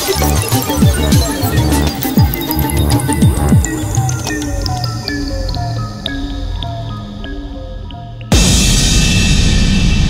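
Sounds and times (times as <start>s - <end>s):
electronic bass line: 0.0s - 8.6s.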